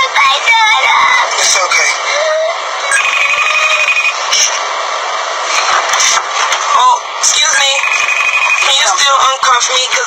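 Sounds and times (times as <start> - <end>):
steady noisy background: 0.0 - 10.0
high electronic ringing tone: 2.8 - 4.2, 7.5 - 9.0.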